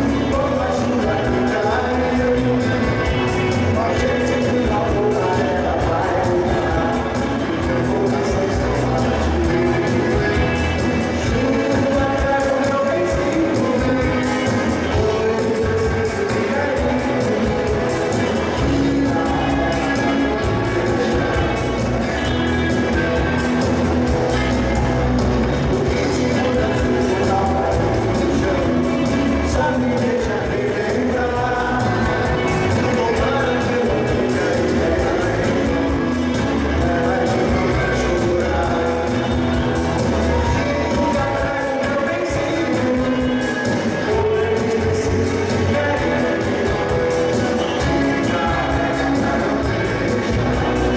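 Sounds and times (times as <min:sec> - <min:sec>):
live rock band playing: 0:00.0 - 0:50.9.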